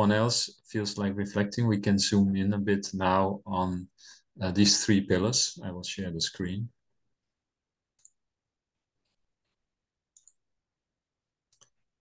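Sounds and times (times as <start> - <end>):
computer mouse clicks: 8.0 - 8.2, 9.0 - 10.4, 11.5 - 11.8.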